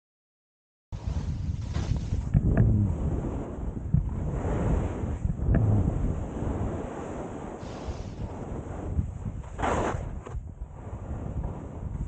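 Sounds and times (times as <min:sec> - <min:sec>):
skis hissing through snow: 0:01.0 - 0:02.2, 0:06.4 - 0:10.2
wind buffeting microphone: 0:01.0 - 0:12.0.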